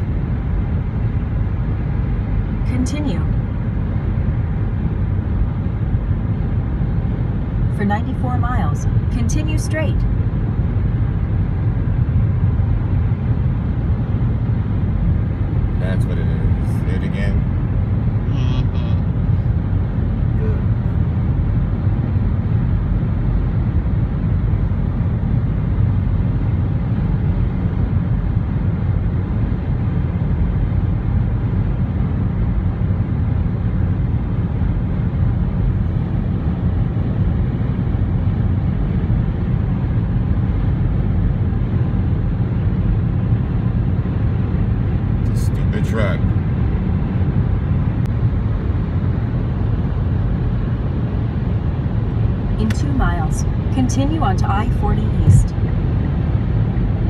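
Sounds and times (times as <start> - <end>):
vehicle road rumble: 0.0 - 57.0.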